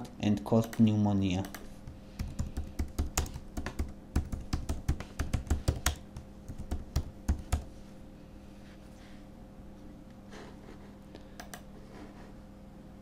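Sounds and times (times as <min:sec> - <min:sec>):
typing on computer keyboard: 0:00.6 - 0:07.7.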